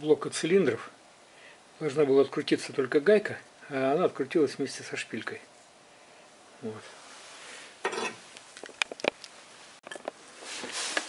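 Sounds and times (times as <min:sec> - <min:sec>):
rustling handling noise: 0:06.9 - 0:11.0.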